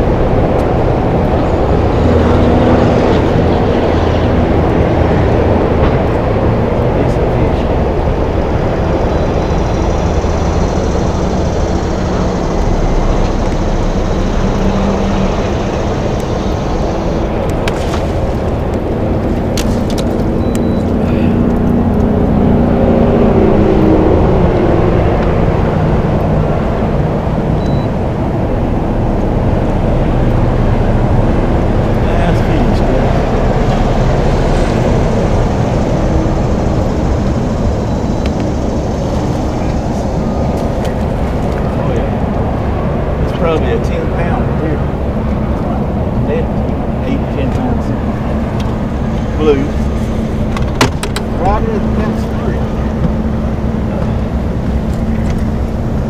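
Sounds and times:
faint droning hum: 0.0s - 56.0s
wind buffeting microphone: 0.0s - 56.0s.

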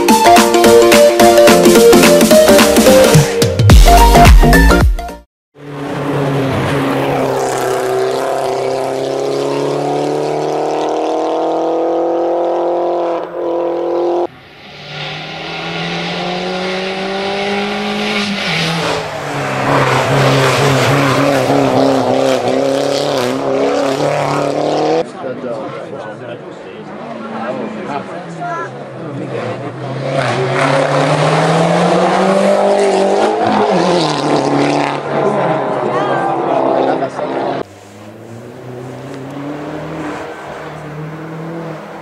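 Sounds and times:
race car engine accelerating: 5.6s - 25.9s, 26.8s - 42.0s.

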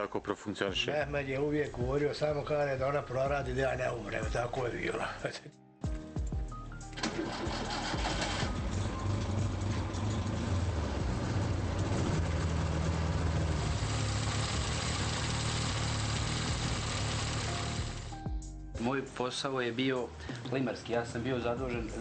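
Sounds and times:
car engine starting and running: 6.9s - 18.2s.

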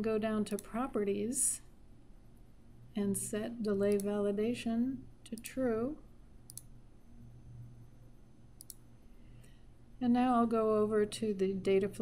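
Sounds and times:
faint low hum: 0.0s - 12.0s
computer mouse clicks: 0.5s - 0.8s, 3.8s - 4.2s, 6.4s - 6.8s, 8.6s - 9.5s.

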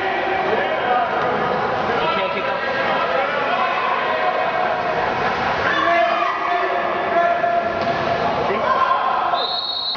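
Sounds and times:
people shouting indoors: 2.0s - 4.9s, 5.6s - 7.8s, 8.5s - 9.4s.

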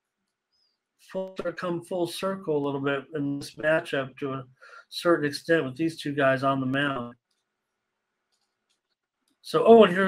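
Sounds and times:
man speaking: 1.1s - 7.1s, 9.5s - 10.0s.

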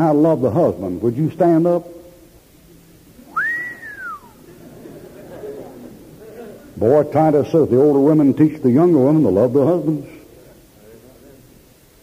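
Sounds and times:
person whistling a sliding note: 3.3s - 4.4s.

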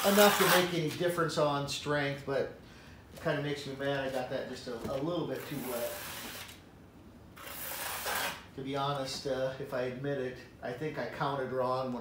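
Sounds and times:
trowel scraping wet concrete: 0.0s - 0.7s, 7.4s - 8.4s.

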